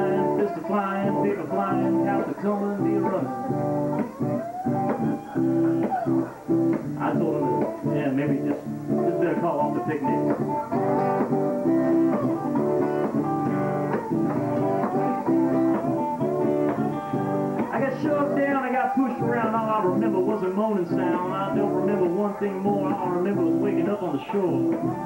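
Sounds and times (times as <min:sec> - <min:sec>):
guitars strumming: 0:00.0 - 0:25.0.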